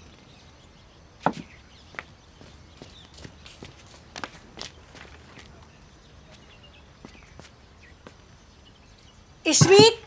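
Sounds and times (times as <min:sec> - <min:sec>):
wooden chair knocking: 0:09.6 - 0:10.0.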